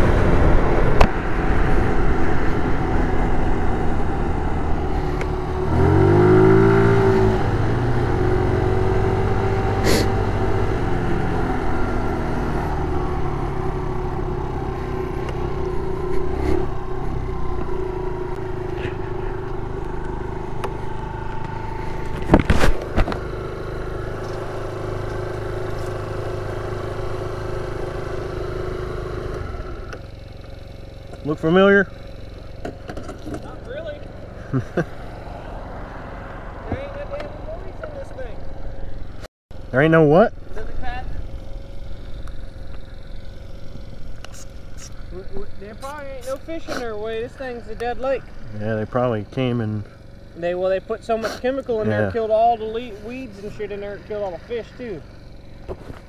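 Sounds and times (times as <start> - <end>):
road and wind noise: 0.0 - 56.0
scooter engine running: 0.0 - 56.0.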